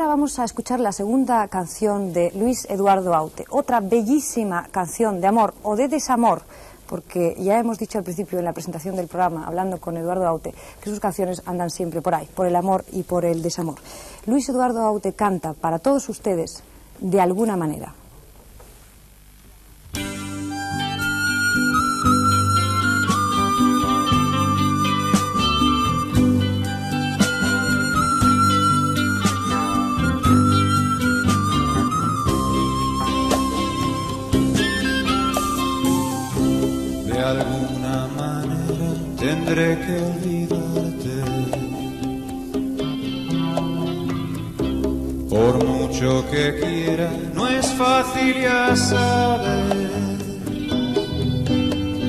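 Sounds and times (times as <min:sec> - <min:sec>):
bass notes: 0:19.3 - 0:52.0
guitar: 0:19.8 - 0:52.0
man singing: 0:37.0 - 0:42.1, 0:45.3 - 0:51.1.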